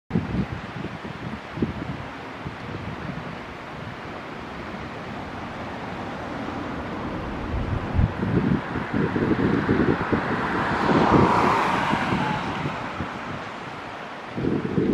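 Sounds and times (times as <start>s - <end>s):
steady rushing noise: 0.1s - 14.9s
wind buffeting microphone: 0.1s - 14.9s.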